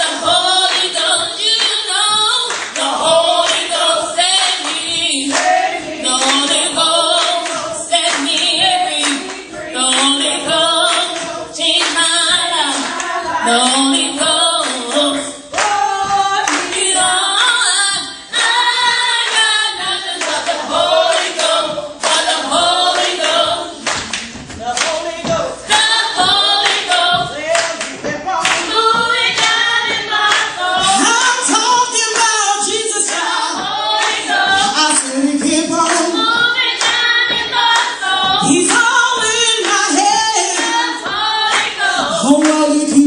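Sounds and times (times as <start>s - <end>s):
congregation clapping in rhythm: 0.0s - 43.0s
voices singing along: 0.0s - 43.0s
woman singing into a microphone: 0.0s - 43.0s.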